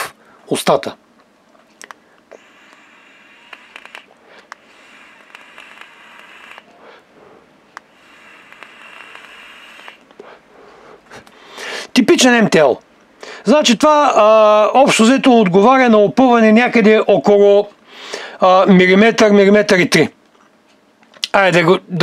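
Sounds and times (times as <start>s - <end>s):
vape draw hiss: 2.3s - 11.9s.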